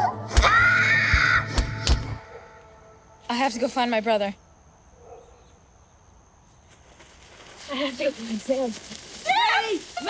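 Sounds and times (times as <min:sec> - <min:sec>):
high wailing cry: 0:00.0 - 0:01.6
dark film score music: 0:00.0 - 0:03.2.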